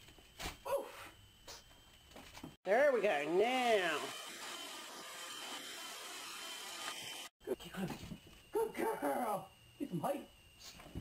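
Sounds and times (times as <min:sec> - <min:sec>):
faint high whine: 0:00.0 - 0:04.1, 0:07.4 - 0:11.0
robot vacuum cleaner whirring: 0:03.3 - 0:07.3.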